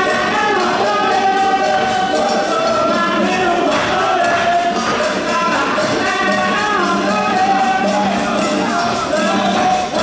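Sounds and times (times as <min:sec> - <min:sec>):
light percussion: 0:00.0 - 0:10.0
male chorus singing: 0:00.0 - 0:10.0.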